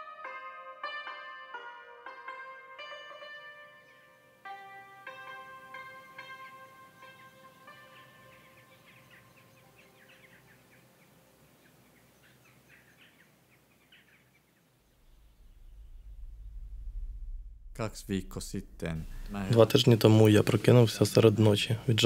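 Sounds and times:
plucked string instrument notes: 0.0s - 10.0s
flock of birds chirping: 5.1s - 16.1s
low hum: 14.8s - 20.4s.

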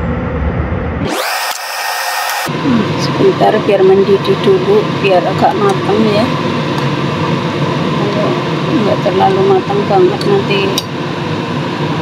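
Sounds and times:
pot of water heating: 1.1s - 12.0s.

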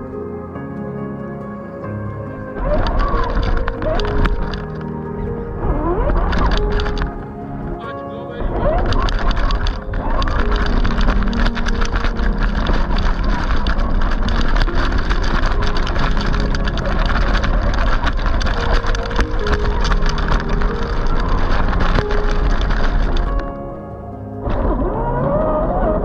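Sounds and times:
tyres crunching on gravel: 2.6s - 23.7s.

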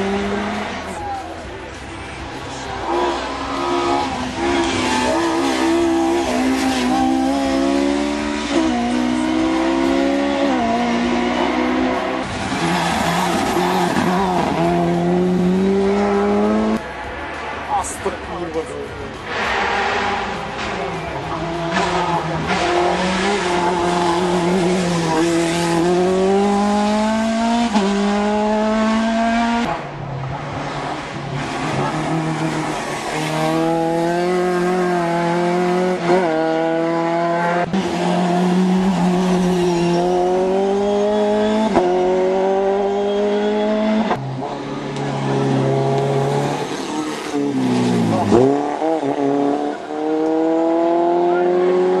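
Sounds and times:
racing car engine revving: 2.6s - 16.8s, 19.2s - 29.9s, 30.5s - 52.0s.

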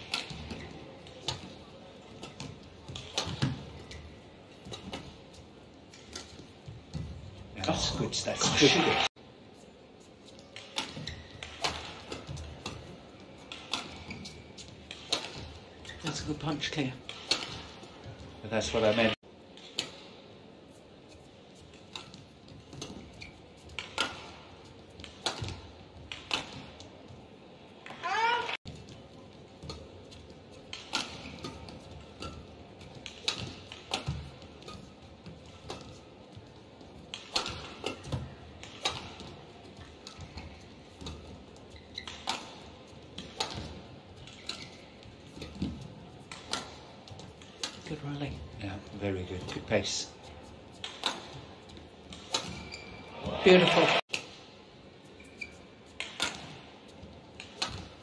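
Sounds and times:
racket striking shuttlecock: 0.0s - 0.6s, 10.4s - 15.5s, 23.7s - 24.4s, 25.0s - 26.8s, 30.6s - 34.9s, 37.1s - 41.2s, 42.0s - 47.8s, 50.8s - 51.4s, 52.1s - 52.8s, 55.9s - 56.7s, 57.4s - 57.9s
low hall background: 0.0s - 58.0s
shoe squeaking on court: 10.5s - 14.7s, 15.7s - 16.6s, 22.7s - 24.3s, 40.0s - 47.8s, 52.3s - 53.2s, 55.0s - 56.3s.

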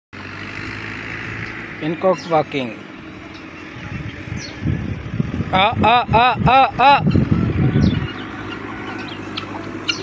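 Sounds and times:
outdoor background noise: 0.2s - 10.0s
man speaking: 1.8s - 2.9s, 5.5s - 7.1s.

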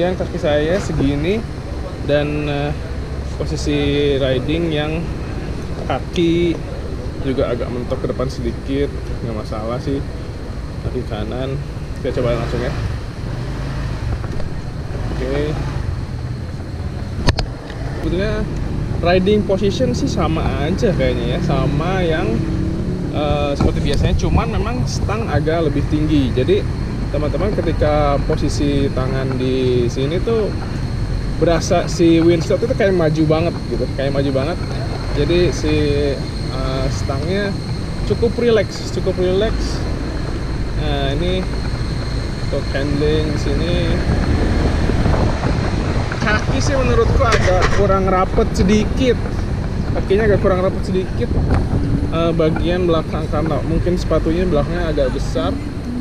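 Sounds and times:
scooter engine rumble: 0.0s - 56.0s
wind buffeting microphone: 12.8s - 56.0s.

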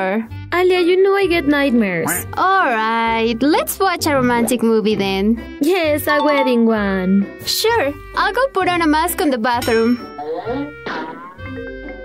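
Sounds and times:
light background music: 0.0s - 12.0s
phone ringtone: 6.1s - 6.8s.

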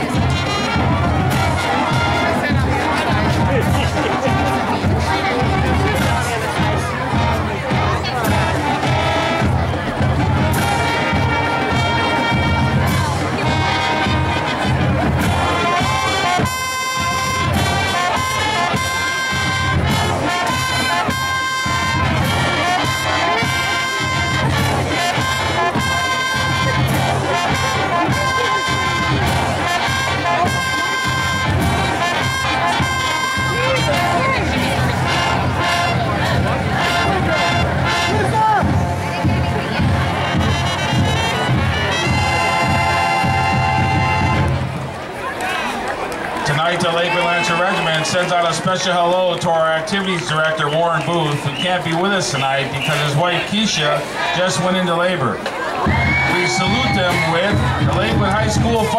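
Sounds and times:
brass holding sustained notes: 0.0s - 44.6s
marching band playing: 0.0s - 58.9s
steady drums: 0.0s - 58.9s.

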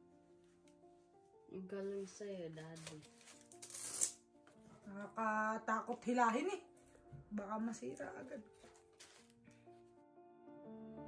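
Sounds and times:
soft background music: 0.0s - 11.0s
cap rustling: 8.4s - 9.4s.

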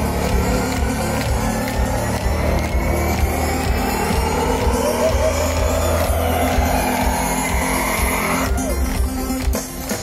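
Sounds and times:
electronic sweep rising in pitch: 0.0s - 8.7s
live pop music through speakers: 0.0s - 10.0s.

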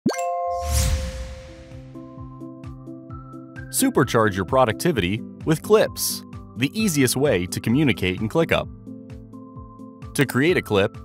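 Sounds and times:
low boom: 0.6s - 2.4s.

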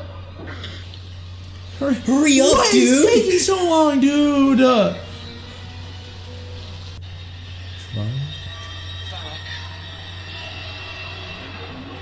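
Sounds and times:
voice-like sound rising in pitch: 1.8s - 5.1s.

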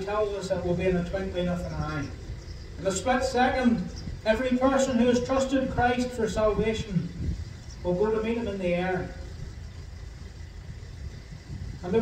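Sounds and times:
low steady background rumble: 0.0s - 12.0s.

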